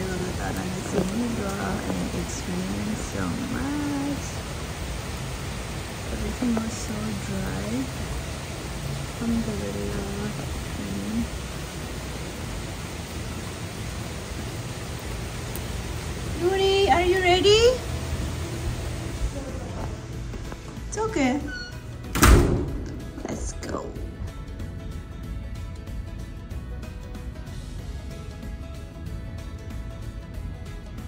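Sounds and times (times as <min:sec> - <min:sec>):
low rumble: 0:00.0 - 0:30.7
rain on trees and wooden deck: 0:00.0 - 0:31.0.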